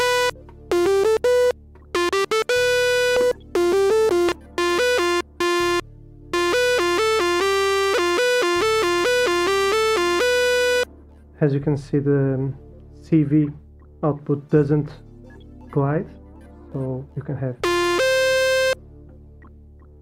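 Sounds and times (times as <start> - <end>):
buzzy synth notes: 0.0 - 10.9, 17.6 - 18.8.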